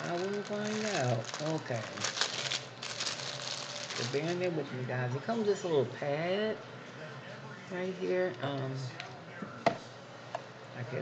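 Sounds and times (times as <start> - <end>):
packaging rustling and crinkling: 0.0 - 4.5.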